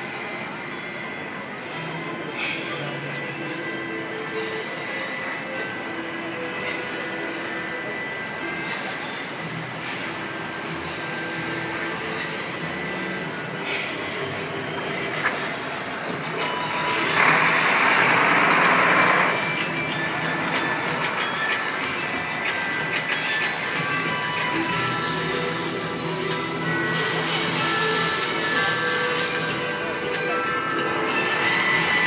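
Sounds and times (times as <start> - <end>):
street traffic: 0.0 - 32.0.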